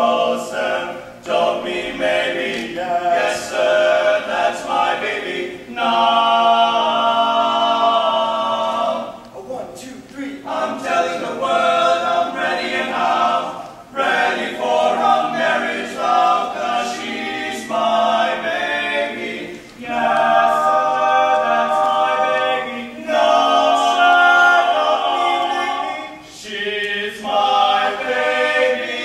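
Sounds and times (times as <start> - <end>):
male quartet singing a cappella: 0.0 - 29.0.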